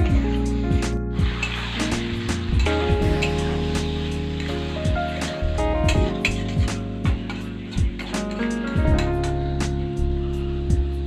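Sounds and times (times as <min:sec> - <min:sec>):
instrumental background music: 0:00.0 - 0:11.0
oil sizzling: 0:00.0 - 0:11.0.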